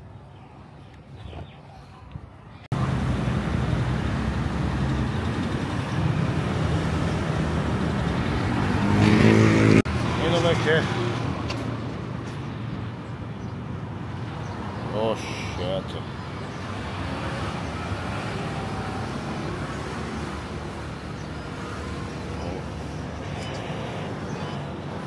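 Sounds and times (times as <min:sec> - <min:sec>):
quiet street noise: 0:00.0 - 0:25.0
loud engine passing close: 0:02.7 - 0:11.0
cars and motorcycles running: 0:02.7 - 0:25.0.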